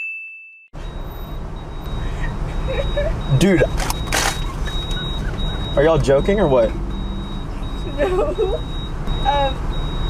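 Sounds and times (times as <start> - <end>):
bell-like ding: 0.0 - 0.7
car cabin background noise: 0.8 - 10.0.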